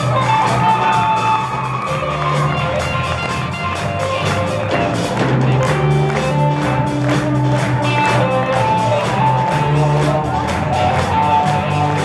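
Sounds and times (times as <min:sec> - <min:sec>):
drum kit steady beat: 0:00.0 - 0:12.0
electric bass: 0:00.0 - 0:12.0
electric guitar: 0:00.0 - 0:12.0.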